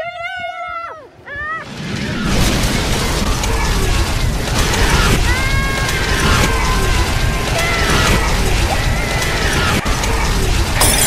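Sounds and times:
loud dense wind: 1.1 - 10.8
debris rattling and clattering: 10.0 - 11.0.

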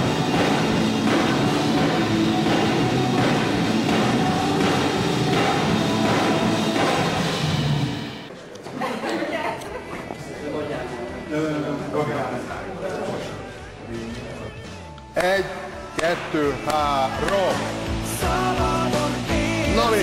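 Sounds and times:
rock music with guitars and drums: 0.0 - 8.3, 16.8 - 20.0.

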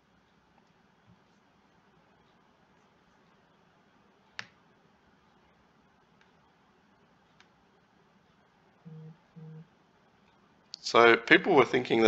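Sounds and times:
computer mouse click: 4.4 - 4.6
short low hums: 8.9 - 9.7.

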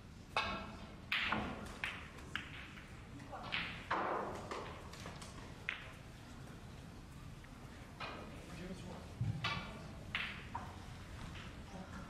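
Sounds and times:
snooker balls clicking: 0.3 - 6.2, 9.4 - 11.7
cue ball cracking into balls: 1.1 - 6.0.

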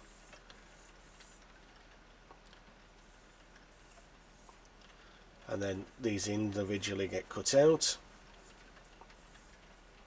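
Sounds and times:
faint ticks: 0.1 - 5.5, 8.3 - 10.0.

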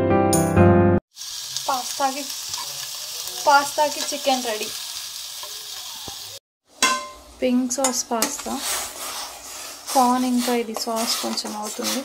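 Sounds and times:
background music: 0.0 - 1.0
chicken sizzling in a pan: 1.1 - 6.4.

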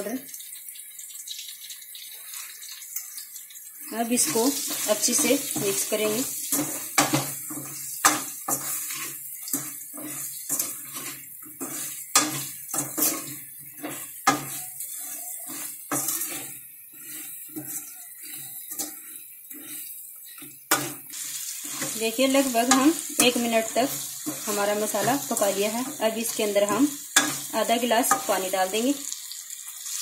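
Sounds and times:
low sizzle of frying: 0.0 - 30.0
steel spoon scraping a pan: 2.1 - 30.0.

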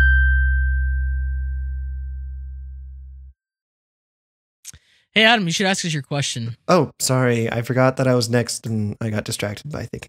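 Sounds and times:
deep synth note: 0.0 - 3.3.

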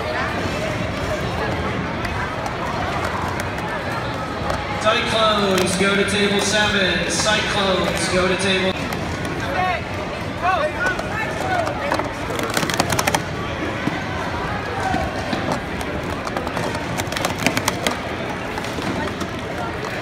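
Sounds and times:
people shouting and talking: 0.0 - 20.0
plastic cups clacking: 10.8 - 14.0, 15.0 - 20.0.

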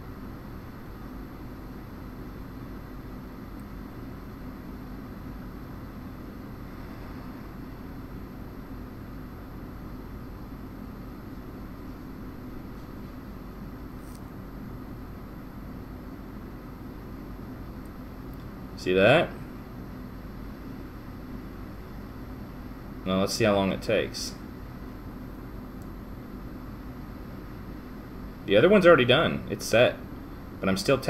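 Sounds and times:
faint low hum: 0.0 - 31.0
fan hissing: 0.0 - 31.0.

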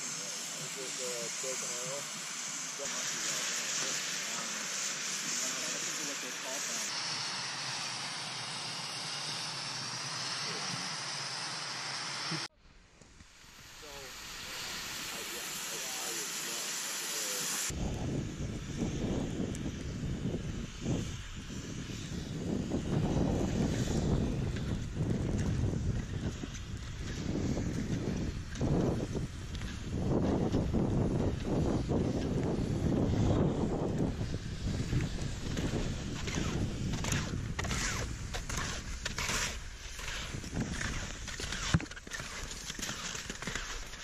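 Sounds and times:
steady outdoor hiss: 0.0 - 44.0
wind buffeting microphone: 17.7 - 41.7.

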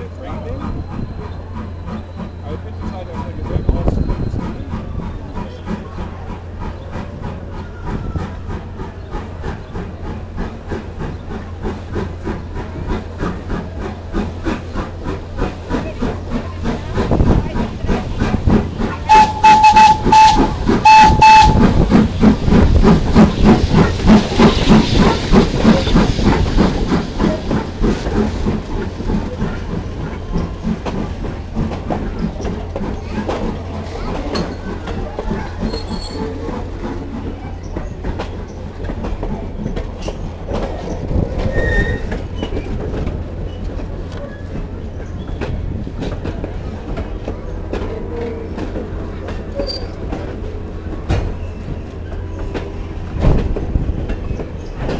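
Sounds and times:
locomotive exhaust chuffing: 0.0 - 54.9
train rumbling on track: 0.0 - 54.9
steam locomotive whistle blasts: 19.1 - 21.8.

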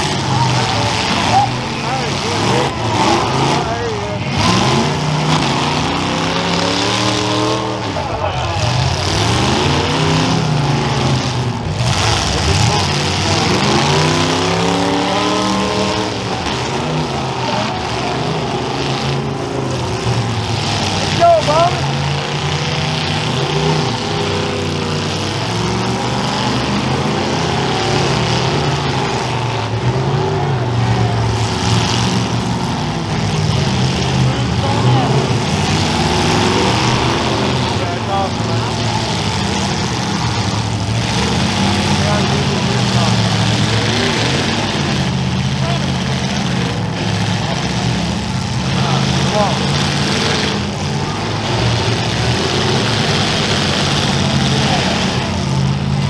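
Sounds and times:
car engines revving: 0.0 - 56.0.

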